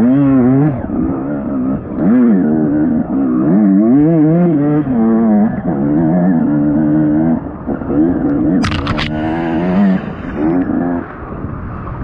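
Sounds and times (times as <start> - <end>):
off-road engine revving: 0.0 - 11.5.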